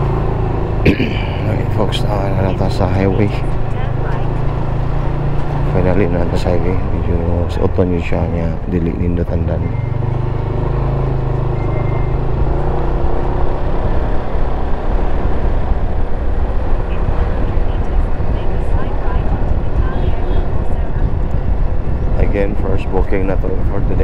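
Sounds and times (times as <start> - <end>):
motorbike engine humming: 0.0 - 24.0
wind and road noise: 0.0 - 24.0.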